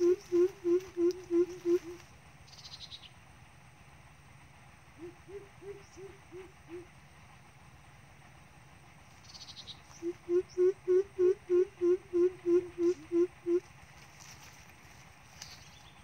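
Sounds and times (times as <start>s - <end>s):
bird's deep hooting call: 0.0s - 3.0s, 4.9s - 7.0s, 9.3s - 13.7s.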